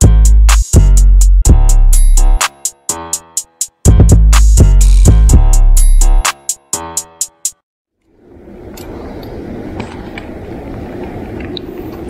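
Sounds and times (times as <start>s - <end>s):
low outdoor rumble: 8.0s - 12.0s.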